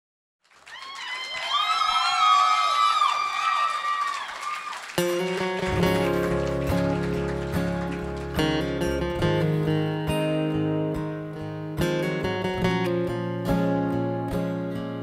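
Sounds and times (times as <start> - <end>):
audience cheering and whooping: 0.6 - 8.4
acoustic guitar chords: 5.0 - 15.0.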